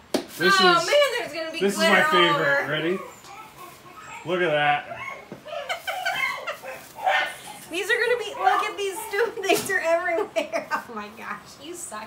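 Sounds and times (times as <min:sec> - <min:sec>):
dog whining: 0:00.8 - 0:09.6.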